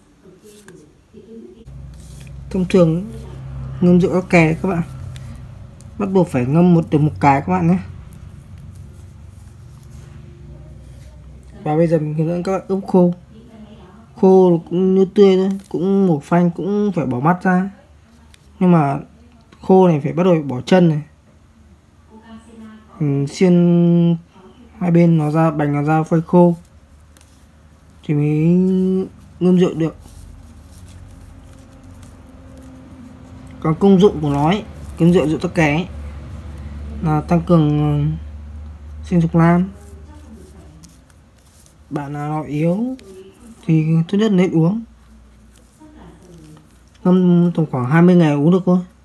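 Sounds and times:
low steady hum: 0.0 - 49.0.

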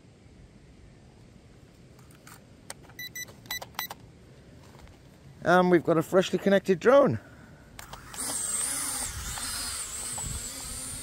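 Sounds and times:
faint wind noise: 0.0 - 11.0.

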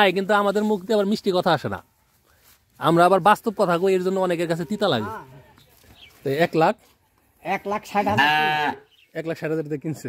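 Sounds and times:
calf mooing: 4.4 - 5.4, 8.0 - 8.9.

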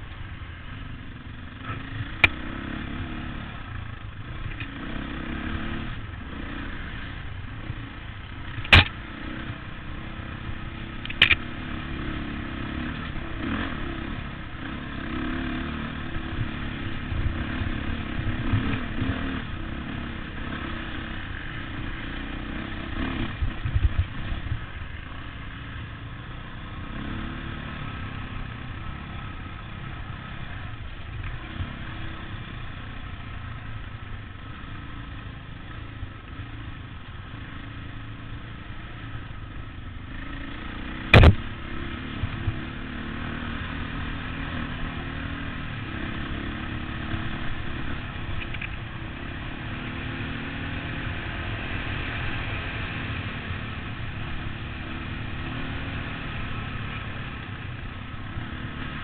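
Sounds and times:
motorcycle engine running: 0.0 - 59.0
clatter from rough ground: 7.7 - 9.0, 11.0 - 11.5, 41.1 - 41.6, 48.2 - 48.9
sharp loud knock: 41.1 - 41.5.

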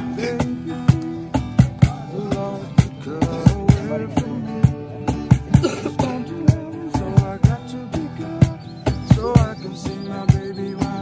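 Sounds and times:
acoustic guitars strumming: 0.0 - 11.0
cajon beat with slaps: 0.0 - 11.0.

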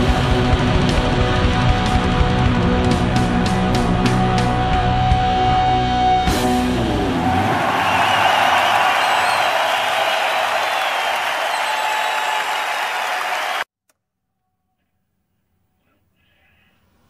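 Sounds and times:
audience applause: 7.1 - 13.7.

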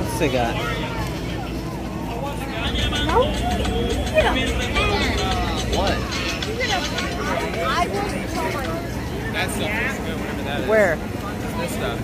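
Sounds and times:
people talking: 0.0 - 12.0
steady low hum: 0.6 - 12.0.

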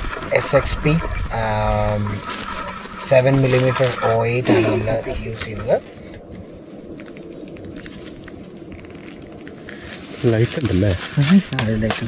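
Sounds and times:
dry grass rustling and crackling: 0.0 - 12.0
clothing rustle: 1.6 - 11.8.

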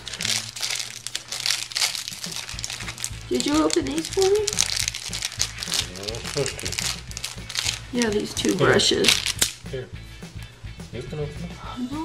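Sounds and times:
packaging crinkling: 0.0 - 9.6.

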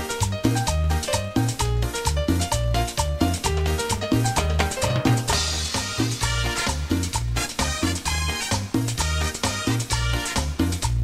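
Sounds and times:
driving rhythmic bass line: 0.0 - 11.0
live dance band playing: 0.0 - 11.0.

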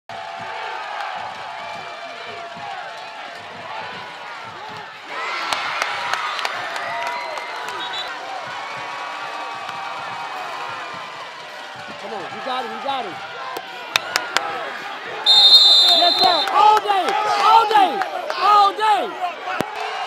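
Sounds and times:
crowd shouting and cheering: 0.1 - 20.0.

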